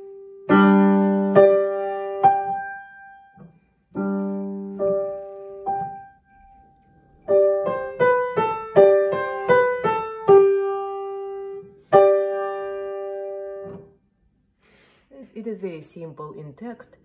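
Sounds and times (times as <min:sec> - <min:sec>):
upright piano melody: 0:00.0 - 0:14.0.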